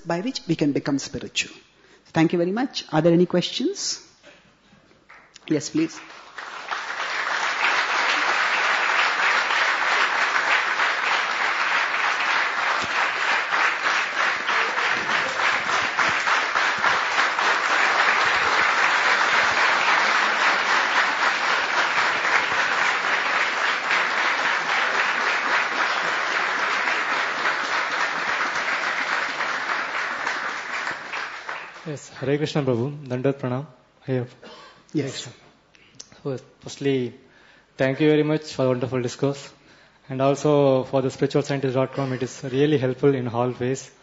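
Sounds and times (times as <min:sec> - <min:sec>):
audience applauding: 0:05.1 - 0:32.0.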